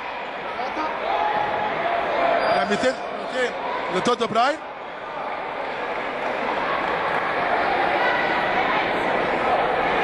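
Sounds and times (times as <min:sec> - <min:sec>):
crowd voices in sports hall: 0:00.0 - 0:10.0.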